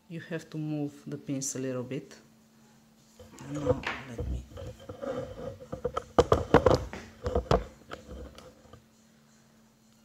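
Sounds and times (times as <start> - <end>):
handling knocks and taps: 3.2 - 8.8.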